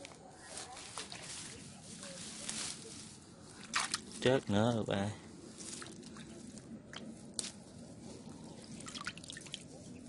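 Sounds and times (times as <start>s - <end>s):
grass rustling and brushing: 0.0s - 10.0s.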